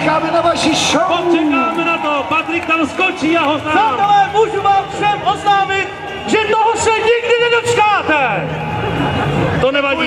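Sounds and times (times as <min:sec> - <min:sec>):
man talking over loudspeaker: 0:00.0 - 0:08.6, 0:09.5 - 0:10.0.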